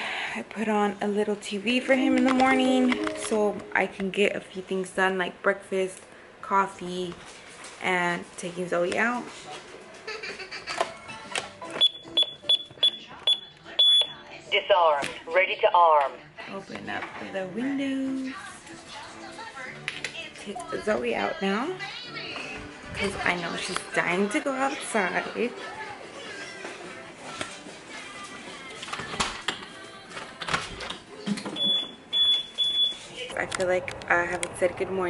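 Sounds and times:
background music: 1.2 - 4.6, 10.6 - 35.0
alarm keypad beeping: 11.8 - 14.1, 31.6 - 33.0.

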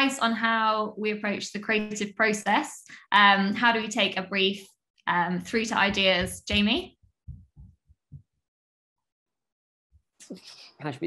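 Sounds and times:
faint soft low thumps: 5.5 - 8.3.

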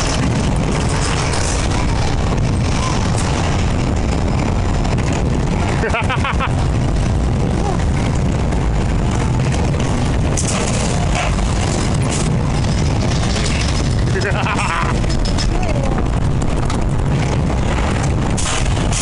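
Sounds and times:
roller coaster wheels rumbling: 0.0 - 19.0
wind on microphone: 0.0 - 19.0
person's voice: 7.5 - 7.9, 15.4 - 16.1.

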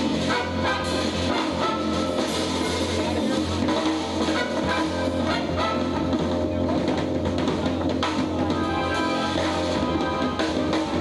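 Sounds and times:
bass line: 0.0 - 11.0
drums: 0.0 - 11.0
electric guitar: 0.0 - 11.0.

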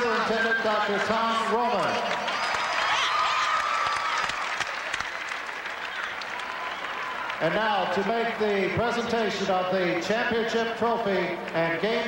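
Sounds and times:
crowd applauding: 0.0 - 8.8
crowd cheering: 0.0 - 9.4
man speaking: 7.4 - 12.0.

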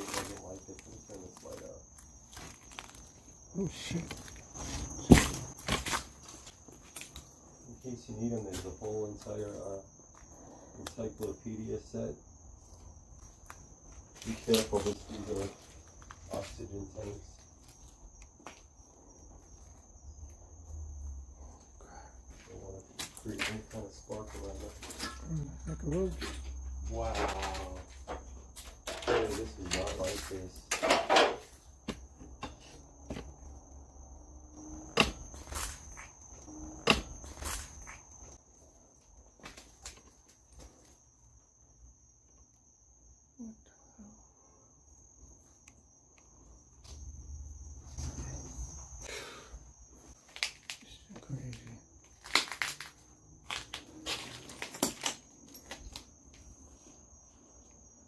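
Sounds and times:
footsteps crunching: 0.0 - 7.5
crickets chirring: 0.0 - 58.0.

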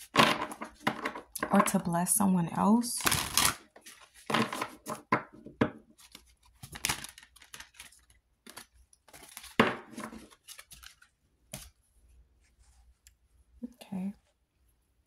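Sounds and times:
cards being shuffled: 6.0 - 11.8.

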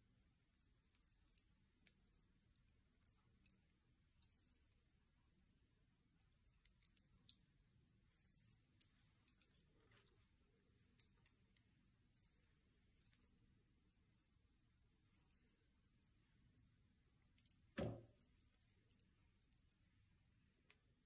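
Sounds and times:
knitting needles clicking: 0.7 - 4.9, 6.1 - 10.0, 10.7 - 14.3, 16.5 - 20.0.

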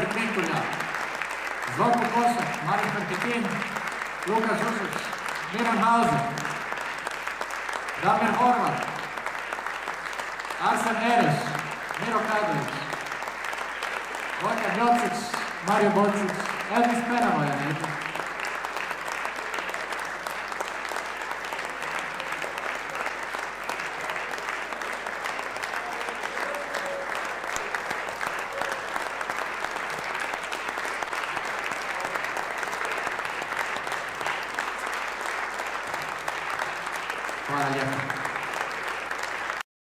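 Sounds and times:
man talking: 0.0 - 0.8, 1.6 - 6.6, 8.0 - 9.1, 10.6 - 13.0, 14.4 - 18.1, 37.5 - 38.2
audience applauding: 0.0 - 39.6.

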